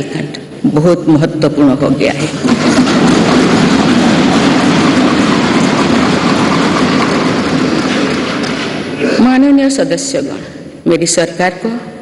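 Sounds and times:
people thumping wooden desks: 1.8 - 10.7.

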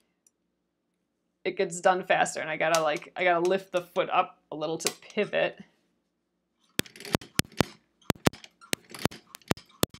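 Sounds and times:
sewing machine stitching: 6.8 - 10.0.

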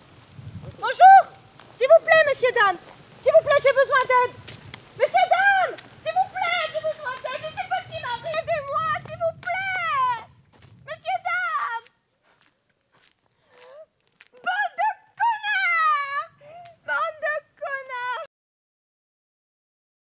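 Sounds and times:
low rumble: 0.0 - 1.8, 4.3 - 11.0
woman calling out in long cries: 0.8 - 1.4, 14.3 - 17.4.

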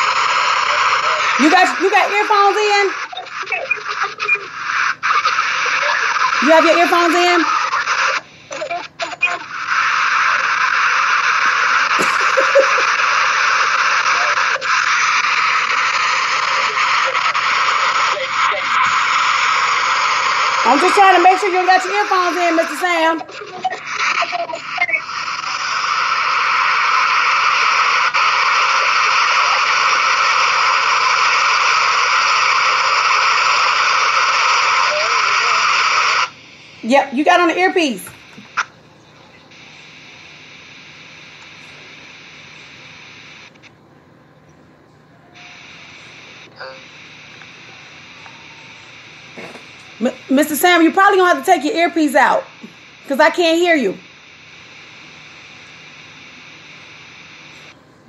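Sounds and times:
static hiss on phone line: 0.0 - 44.3, 45.2 - 58.0.

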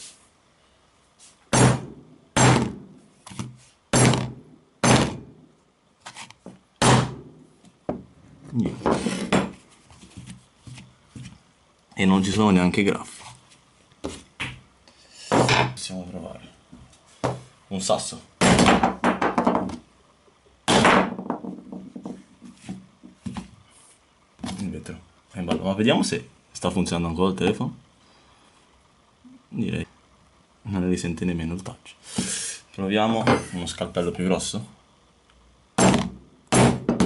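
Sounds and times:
heavy hit on phone: 1.5 - 2.9, 4.0 - 5.3, 6.8 - 7.3, 35.8 - 37.0.

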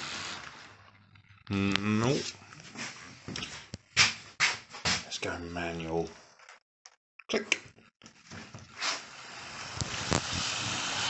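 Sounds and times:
man saying nope: 1.5 - 2.1.

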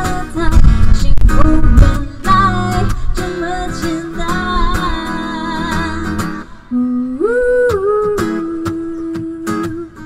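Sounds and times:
woman humming: 6.7 - 10.0.

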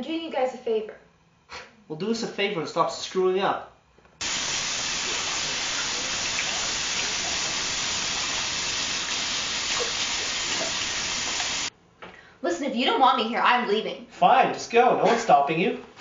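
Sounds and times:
shower spray hissing: 4.2 - 11.7.

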